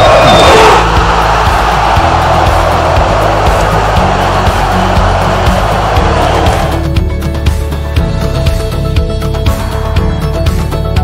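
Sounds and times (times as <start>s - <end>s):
stadium crowd cheering: 0.0s - 7.0s
backing music: 0.0s - 11.0s.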